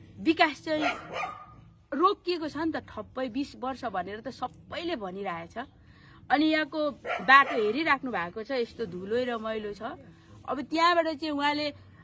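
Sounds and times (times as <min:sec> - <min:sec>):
woman speaking: 0:00.2 - 0:01.1, 0:01.9 - 0:05.7, 0:06.3 - 0:11.8.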